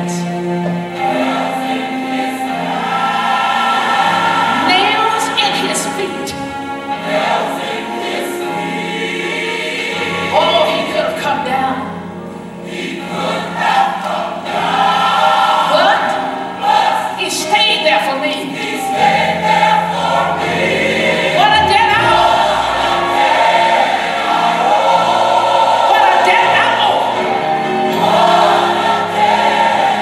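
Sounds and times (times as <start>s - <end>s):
gospel choir singing: 0.0s - 30.0s
instrumental accompaniment: 0.0s - 30.0s.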